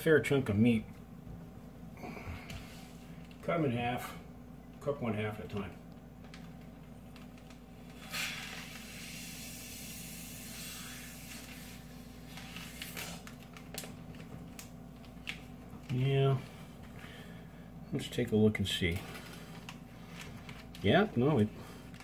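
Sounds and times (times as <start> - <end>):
air sucked through straw: 8.0 - 12.0.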